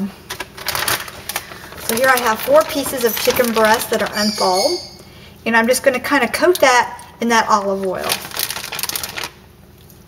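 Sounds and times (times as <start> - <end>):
plastic bag crinkling: 0.2 - 4.6, 7.7 - 10.0.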